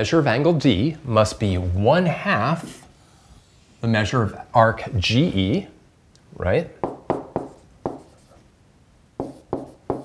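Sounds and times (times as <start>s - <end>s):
stylus strokes on pen tablet: 7.4s - 8.4s.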